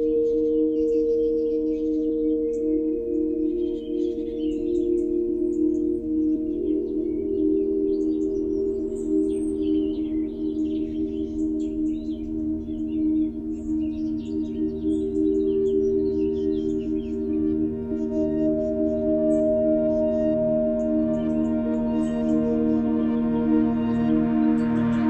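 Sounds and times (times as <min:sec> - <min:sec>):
high chirping synth sounds: 0:00.0 - 0:25.0
synth pad chords: 0:00.0 - 0:25.0.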